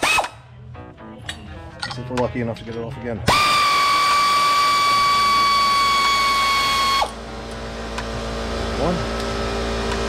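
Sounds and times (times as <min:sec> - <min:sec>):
electric ratchet motor whine: 0:03.3 - 0:07.2.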